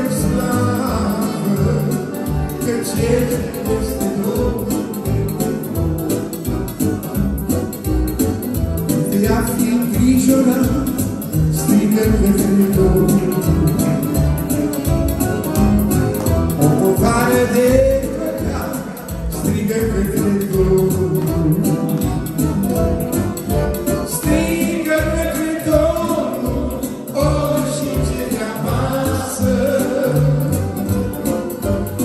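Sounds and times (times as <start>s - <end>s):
man singing: 0.0s - 7.2s, 8.9s - 14.7s, 16.5s - 23.1s, 23.7s - 32.0s
accordion playing lively tune: 0.0s - 32.0s
electronic keyboard accompaniment: 0.0s - 32.0s.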